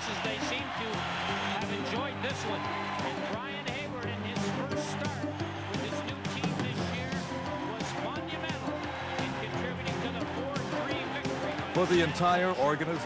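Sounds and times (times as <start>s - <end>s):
crowd cheering and shouting: 0.0s - 13.0s.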